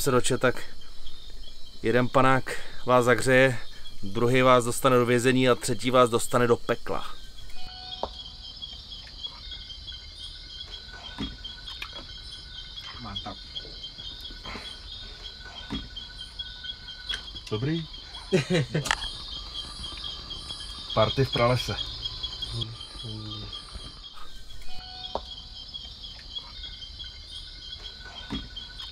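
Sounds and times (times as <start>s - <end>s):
night insects chirping: 0.0s - 28.9s.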